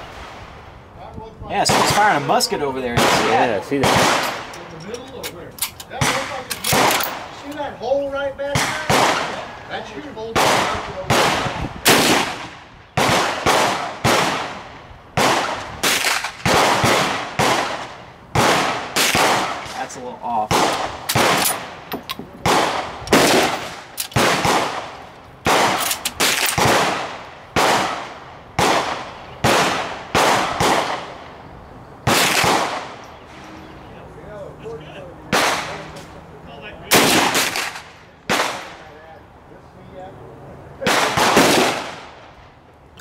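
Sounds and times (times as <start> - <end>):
rifle shots: 1.6 - 4.6, 5.6 - 7.5, 8.5 - 9.5, 10.3 - 19.9, 20.5 - 31.3, 32.0 - 33.0, 35.3 - 35.8, 36.9 - 38.8, 40.8 - 42.2.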